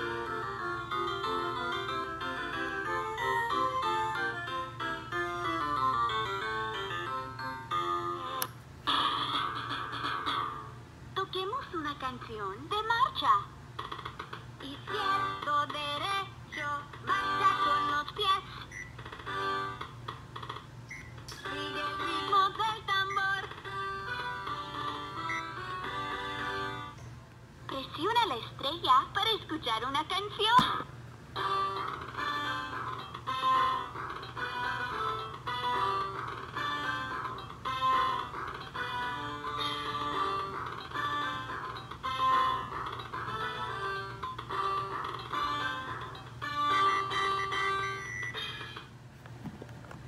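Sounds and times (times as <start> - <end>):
electronic toy melody: 0.0 - 10.6, 21.6 - 27.0, 31.4 - 48.9.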